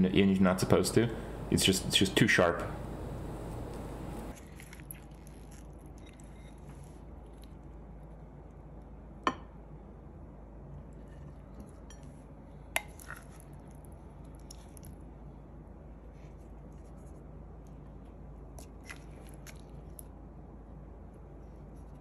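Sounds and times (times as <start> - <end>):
range hood fan humming: 0.0 - 4.4.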